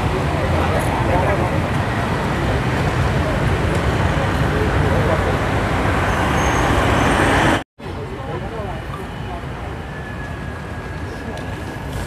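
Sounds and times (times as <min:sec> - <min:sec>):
people talking: 0:00.0 - 0:05.5, 0:07.8 - 0:10.1, 0:11.0 - 0:11.8
street traffic noise: 0:00.0 - 0:12.0.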